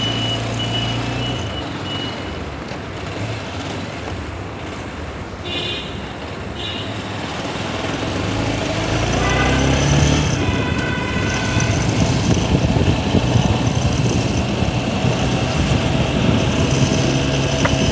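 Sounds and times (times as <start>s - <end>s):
motorcycle engine: 7.0s - 17.9s
wind noise: 8.5s - 17.9s.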